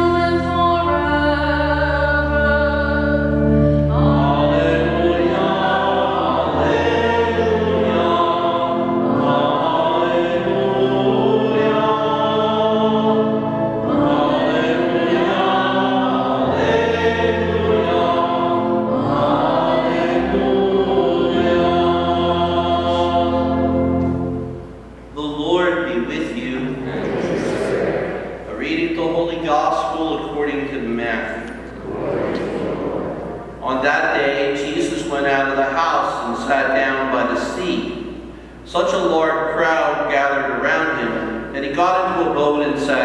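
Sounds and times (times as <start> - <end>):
choir singing church music: 0.0 - 43.0.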